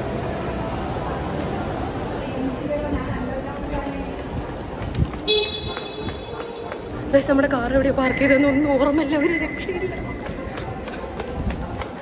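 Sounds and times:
car horn: 5.2 - 6.4.

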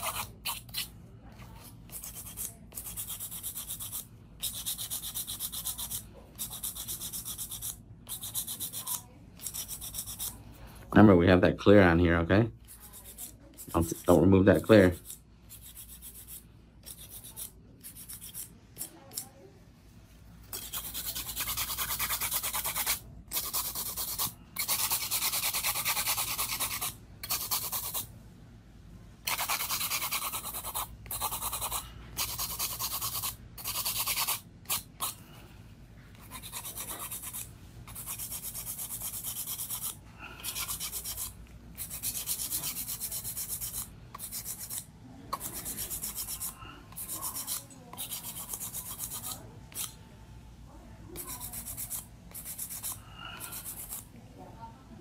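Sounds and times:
nail file rasping on nails: 0.0 - 10.4, 12.6 - 19.3, 20.5 - 28.1, 29.2 - 35.2, 36.1 - 50.0, 51.2 - 54.1.

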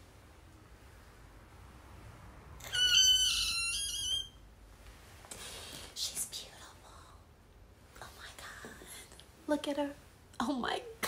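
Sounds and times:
woman squealing with excitement: 2.6 - 4.4.

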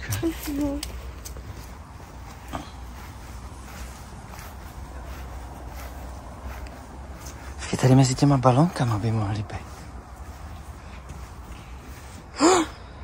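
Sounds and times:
soft footsteps on grass: 0.0 - 12.4.

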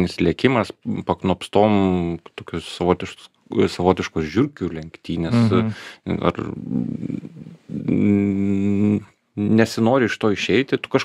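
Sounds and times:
steady held hum: 5.2 - 5.8
man's hesitation sound: 5.3 - 5.8.

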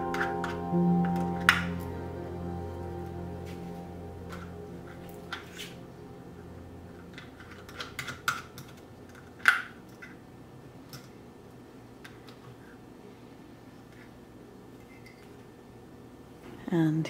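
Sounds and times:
soft background music: 0.0 - 9.5.

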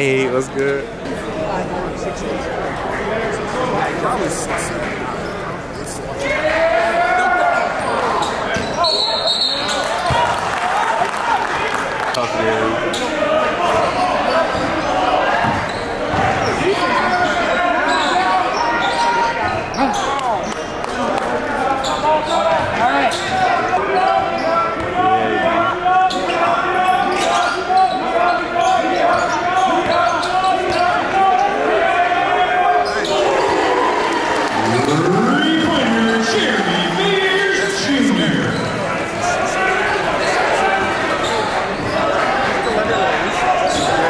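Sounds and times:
murmur of crowd voices: 0.0 - 44.0.

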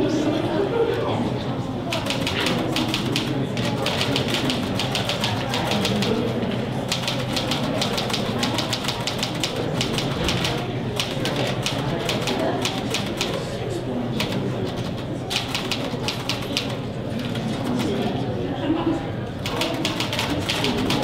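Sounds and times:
low room murmur: 0.0 - 21.0
rapid typing on a keyboard: 1.9 - 13.5, 14.2 - 18.1, 19.4 - 21.0.

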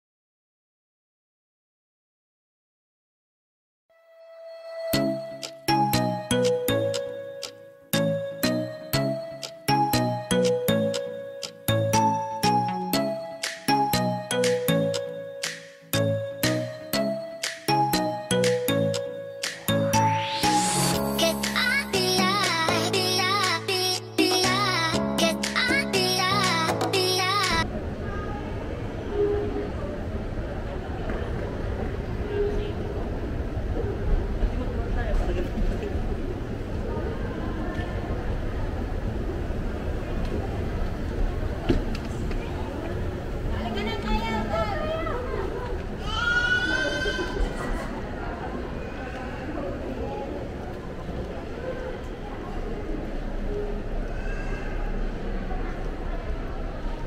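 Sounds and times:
background murmur: 27.5 - 57.0
faint high-pitched gliding cry: 53.5 - 55.4.

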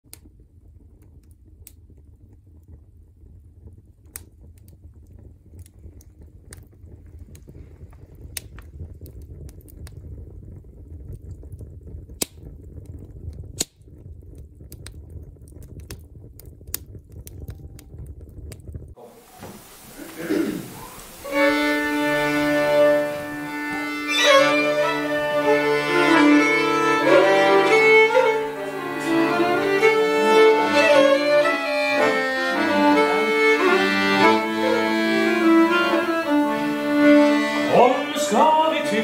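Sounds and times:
wood fire crackling: 0.0 - 39.0.

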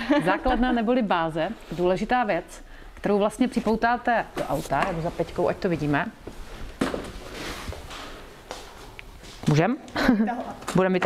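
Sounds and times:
soft rustling handling noise: 2.9 - 9.8.

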